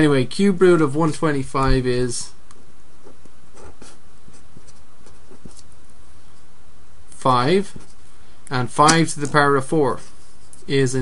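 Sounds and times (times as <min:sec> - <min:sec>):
steady background hiss: 0:00.0 - 0:11.0
pen writing strokes: 0:03.0 - 0:05.7.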